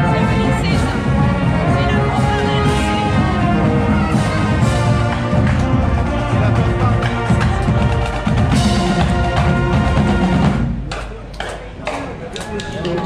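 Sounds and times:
marching band brass chords: 0.0 - 13.0
marching band drumbeats: 0.0 - 13.0.

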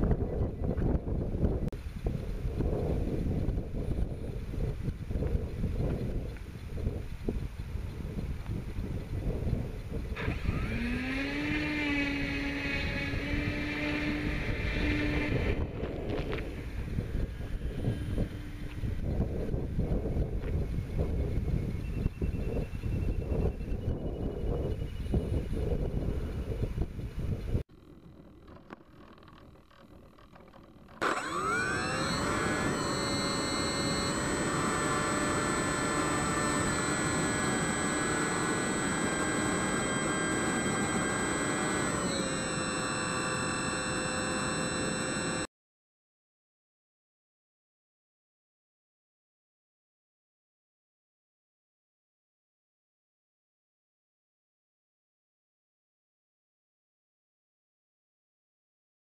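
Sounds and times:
wind buffeting microphone: 0.0 - 42.2
electric motor and propeller whine: 0.0 - 45.5.

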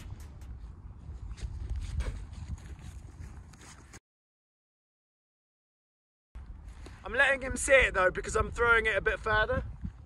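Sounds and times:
wind buffeting microphone: 0.0 - 3.7, 6.4 - 10.0.

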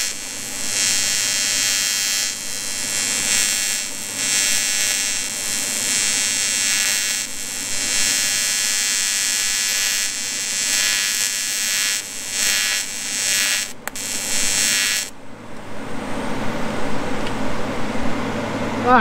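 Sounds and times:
welding arc buzzing: 0.0 - 15.2.

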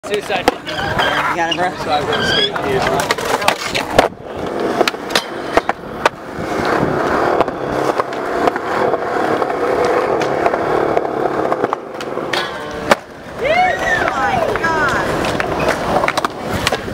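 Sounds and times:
skateboard clacking: 0.0 - 16.9
skateboard wheels rolling on concrete: 0.0 - 16.9.

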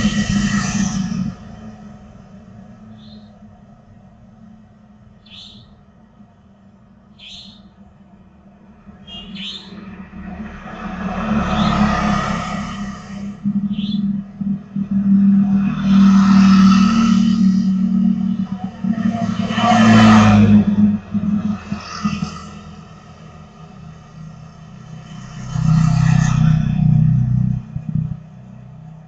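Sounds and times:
motorbike engines passing: 0.0 - 29.0.

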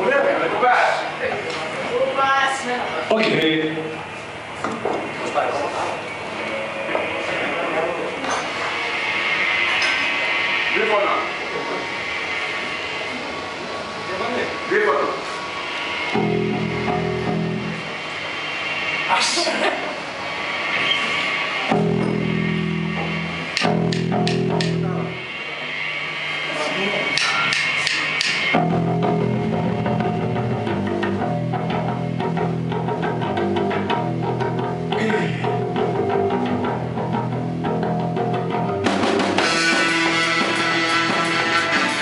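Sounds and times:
electric bass and guitar riff: 16.0 - 18.2, 21.6 - 25.4, 27.1 - 42.0
live rock band playing: 16.1 - 18.0, 21.7 - 25.4, 27.7 - 42.0.

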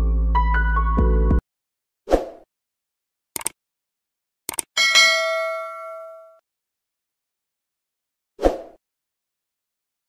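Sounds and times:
notification bell ding: 4.8 - 6.4.

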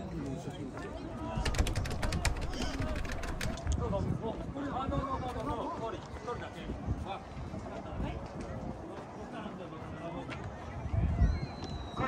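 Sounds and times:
crowd chatter outdoors: 0.0 - 12.0
sharp clicks: 1.4 - 3.8.

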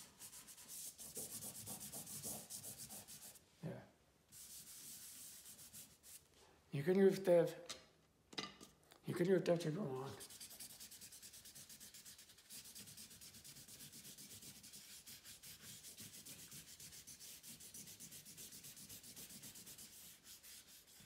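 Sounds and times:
blending tool rubbing on paper: 10.1 - 21.0.

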